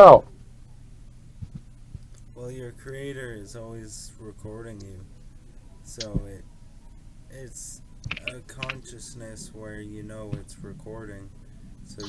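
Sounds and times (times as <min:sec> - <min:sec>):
steady low hum: 0:00.0 - 0:12.0
soft low thumps: 0:01.3 - 0:02.0.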